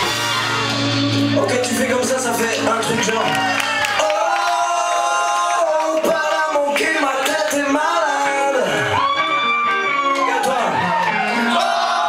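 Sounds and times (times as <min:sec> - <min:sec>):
amplified live band music: 0:00.0 - 0:12.0.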